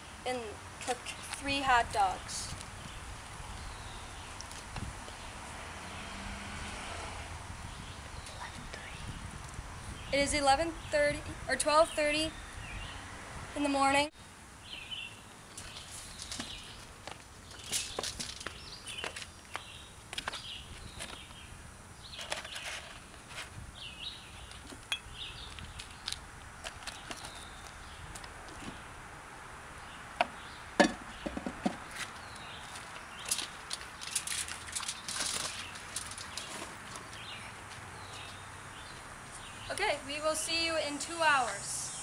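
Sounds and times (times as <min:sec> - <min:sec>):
faint birds chirping: 0:00.0 - 0:06.3, 0:07.6 - 0:42.0.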